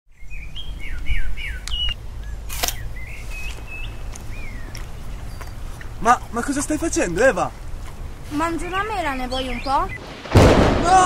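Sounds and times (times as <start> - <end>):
songbirds chirping: 0.1 - 10.3
low steady rumble: 0.4 - 10.0.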